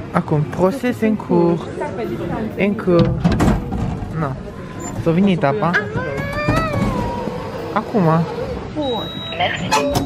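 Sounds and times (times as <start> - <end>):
voices talking: 0.4 - 10.0.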